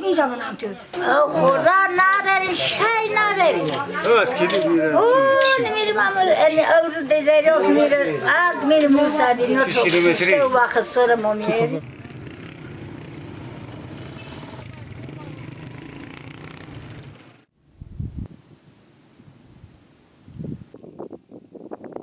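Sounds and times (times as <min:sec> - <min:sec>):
motorcycle engines running: 0:11.8 - 0:17.5.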